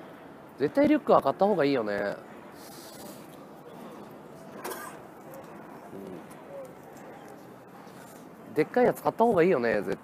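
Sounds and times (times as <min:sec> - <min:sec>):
quiet city street background: 0:00.0 - 0:10.0.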